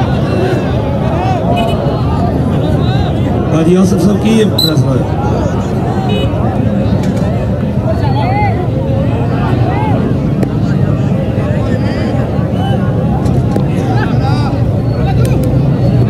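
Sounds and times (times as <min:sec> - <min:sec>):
crowd voices calling out: 0:00.0 - 0:16.0.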